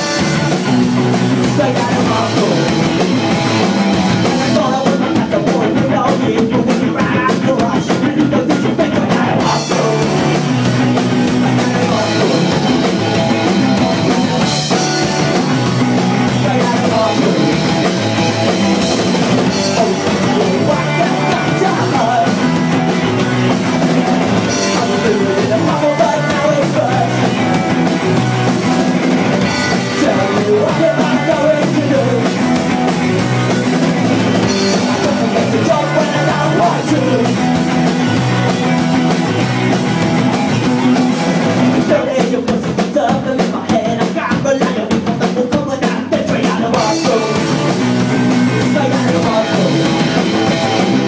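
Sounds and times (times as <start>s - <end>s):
distorted electric guitar: 0.0s - 42.5s, 46.0s - 51.0s
bass guitar: 0.0s - 51.0s
drum kit with cymbals: 0.0s - 51.0s.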